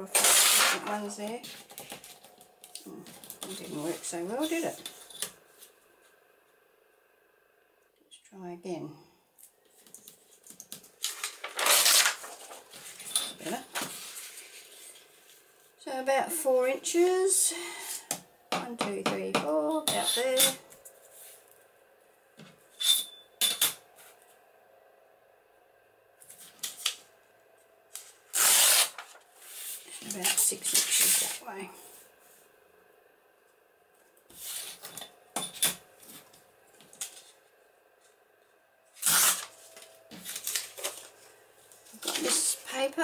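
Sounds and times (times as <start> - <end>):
paper tearing along ruler: 0.0 - 1.6, 11.0 - 12.9, 28.0 - 31.4, 39.0 - 39.6
paper rustling: 9.7 - 15.4, 28.0 - 31.4, 39.0 - 42.6.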